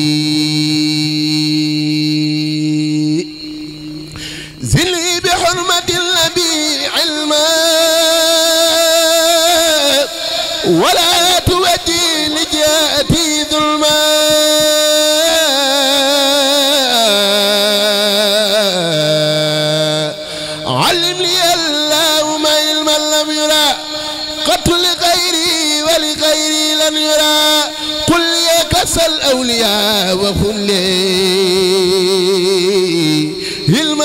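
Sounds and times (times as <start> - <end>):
man chanting through microphone: 0.0 - 34.0.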